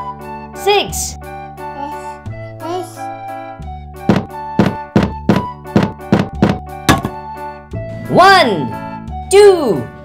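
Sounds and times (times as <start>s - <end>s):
cheerful children's music: 0.0s - 10.0s.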